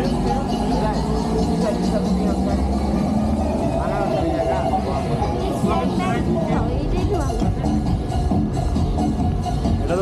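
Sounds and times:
people's voices: 0.0s - 10.0s
vehicle engine rumbling: 0.0s - 10.0s.

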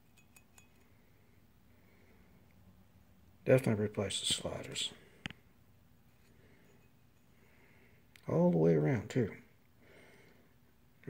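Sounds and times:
faint metallic clinks: 0.0s - 1.4s, 6.0s - 7.6s.

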